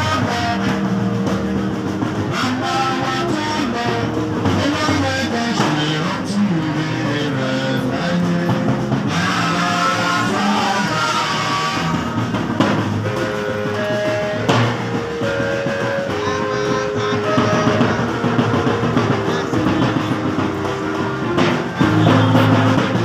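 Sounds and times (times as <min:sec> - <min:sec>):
drums: 0:00.0 - 0:23.0
trumpets playing held notes: 0:00.0 - 0:23.0.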